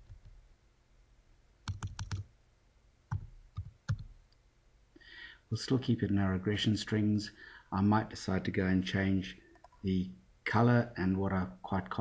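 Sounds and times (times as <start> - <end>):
keyboard keystrokes: 1.7 - 2.2.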